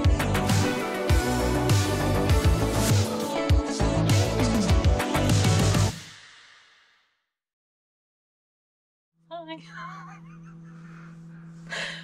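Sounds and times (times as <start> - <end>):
woman giggling: 9.6 - 12.0.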